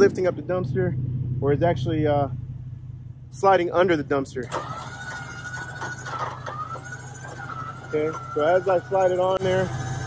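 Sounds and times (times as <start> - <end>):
electric winch whining: 4.4 - 10.0.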